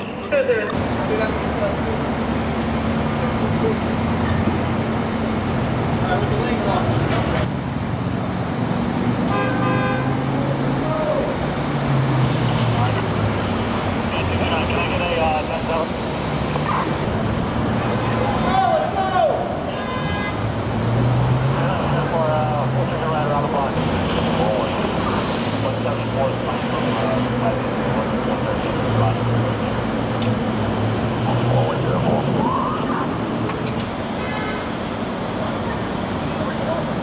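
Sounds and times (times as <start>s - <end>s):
traffic engines: 0.0s - 37.0s
vehicle horn: 9.3s - 10.3s, 19.7s - 20.4s.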